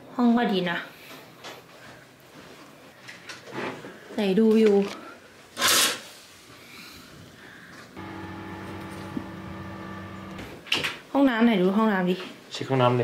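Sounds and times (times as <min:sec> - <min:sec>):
steady low hum: 0:08.0 - 0:10.6.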